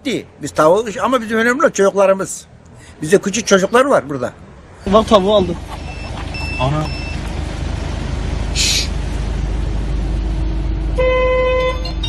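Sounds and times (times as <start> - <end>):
low rumble: 5.5 - 11.0
car horn honk: 11.0 - 12.0.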